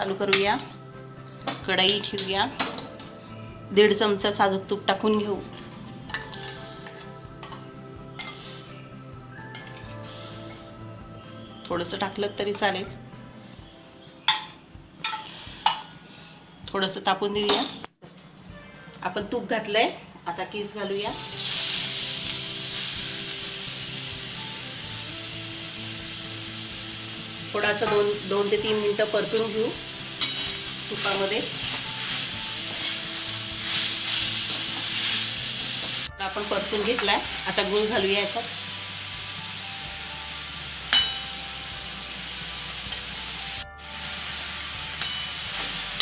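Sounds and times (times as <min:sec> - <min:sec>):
spoon clinking against pan: 0:05.5 - 0:07.6, 0:14.3 - 0:16.0, 0:40.9 - 0:41.3
food sizzling in hot fat: 0:20.9 - 0:46.0.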